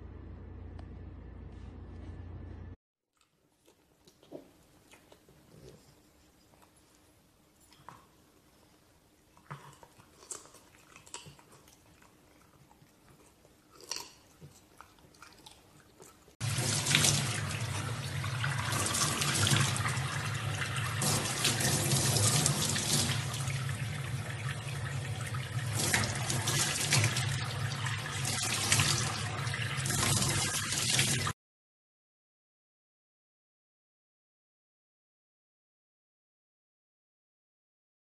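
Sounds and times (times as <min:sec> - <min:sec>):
dog chewing carrot: 0:09.2 - 0:16.4
tap water pouring into sink: 0:16.4 - 0:31.3.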